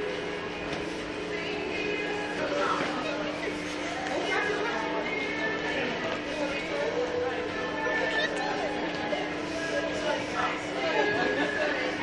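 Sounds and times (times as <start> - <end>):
people chattering: 2.4 - 12.0.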